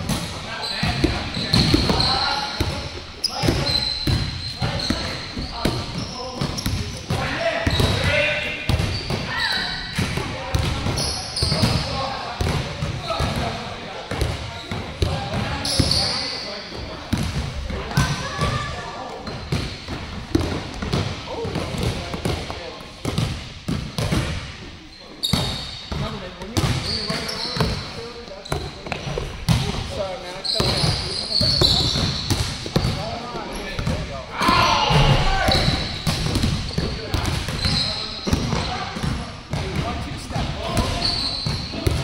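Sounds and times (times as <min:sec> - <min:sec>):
basketballs bouncing on hardwood: 0:00.8 - 0:09.3, 0:17.1 - 0:24.4, 0:25.3 - 0:29.8, 0:30.6 - 0:33.0, 0:33.8 - 0:42.0.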